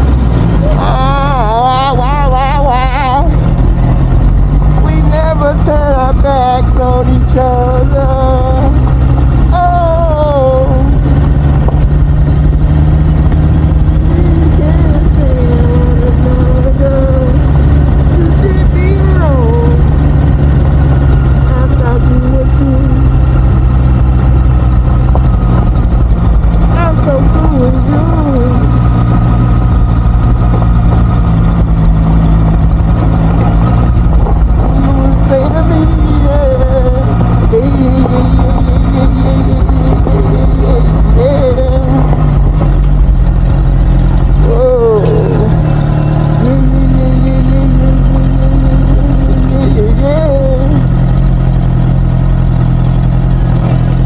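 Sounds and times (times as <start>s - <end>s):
motorcycle engine at low revs: 0.0s - 54.0s.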